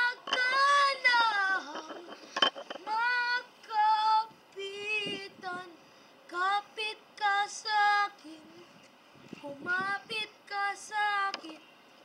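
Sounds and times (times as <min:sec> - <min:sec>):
boy singing unaccompanied: 0:00.0 - 0:02.1, 0:02.8 - 0:11.7.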